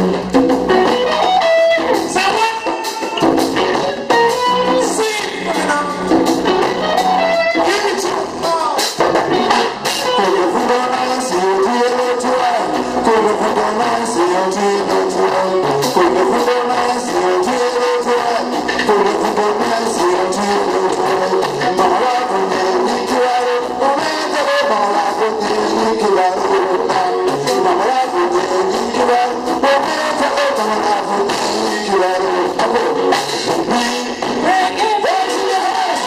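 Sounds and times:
drum kit playing a groove: 0.0 - 36.0
electric guitar: 0.0 - 36.0.

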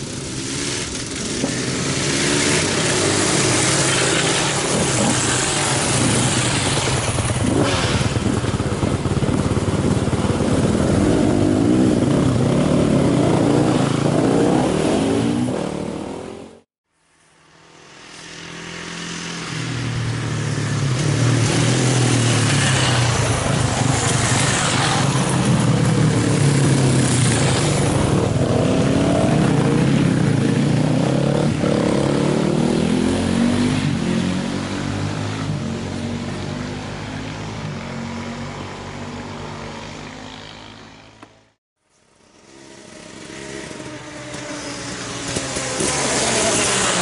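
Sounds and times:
motorcycle engine passing by: 0.0 - 16.6, 17.4 - 41.4, 42.2 - 47.0.

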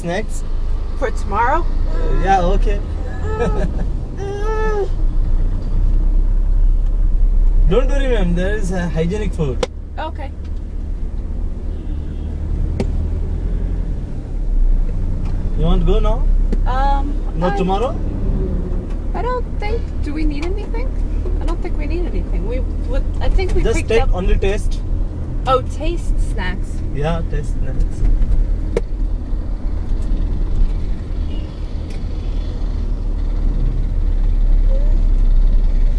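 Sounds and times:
car engine and road rumble: 0.0 - 35.9.

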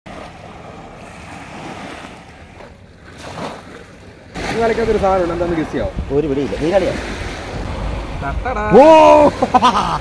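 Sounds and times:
sea surf at shore: 0.1 - 10.0
wind rumbling on microphone: 4.6 - 9.3.

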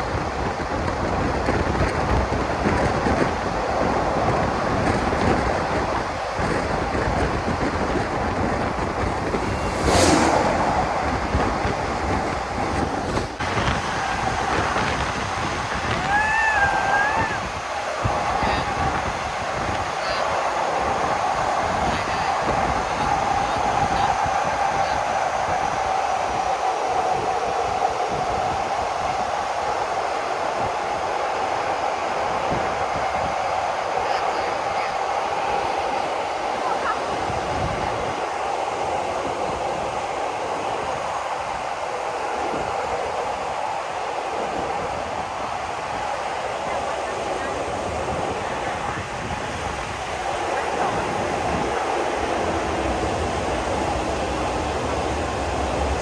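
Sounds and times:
train rumbling on rails: 0.0 - 56.0.

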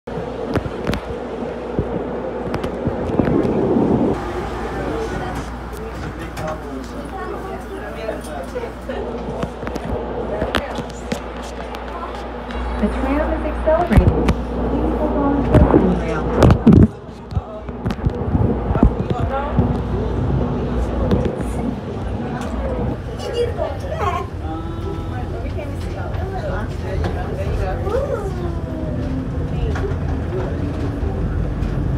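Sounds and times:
tram hum and rumble: 0.0 - 31.9
indistinct voices: 3.0 - 31.9.

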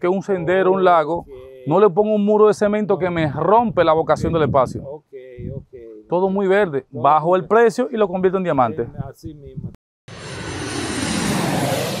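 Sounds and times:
rushing whoosh: 10.1 - 12.0.

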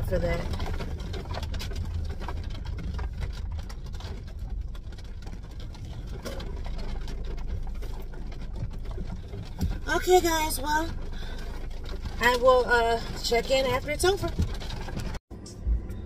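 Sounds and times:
rain pattering on car roof: 0.0 - 15.2
car rolling rumble: 0.0 - 16.0.

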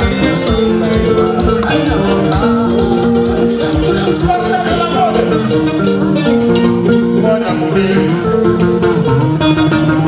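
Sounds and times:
guitar melody: 0.0 - 10.0
live band playing: 0.0 - 10.0.

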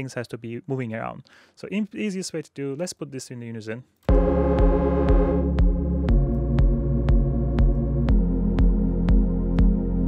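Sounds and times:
deep bass: 4.1 - 10.0
techno synth pad chord: 4.1 - 10.0.

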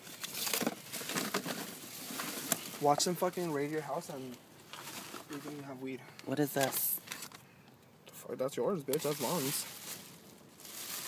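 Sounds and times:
plastic bags rustling and crinkling: 0.0 - 7.4, 9.0 - 11.0.

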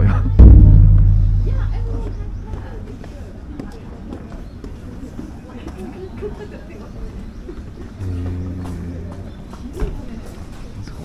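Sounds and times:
crowd chatter: 0.0 - 11.0
deep taiko drum boom: 0.2 - 3.1.

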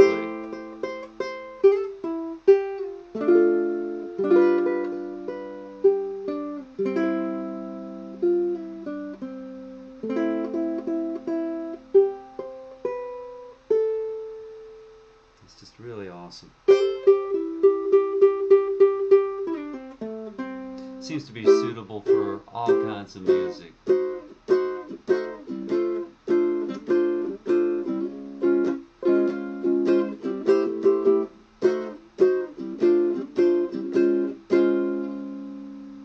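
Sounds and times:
fingerpicked ukulele through amp: 0.0 - 15.3, 16.7 - 36.0.

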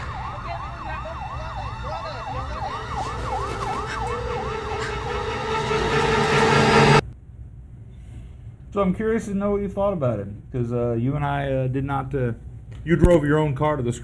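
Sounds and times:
emergency siren wailing: 0.0 - 7.0
film score: 0.0 - 7.0
low rumble: 0.1 - 7.0.

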